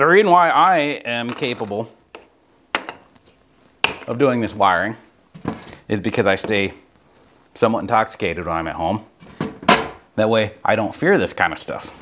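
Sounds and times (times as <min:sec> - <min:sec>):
things set down on wooden workbench: 0:09.2 - 0:10.0.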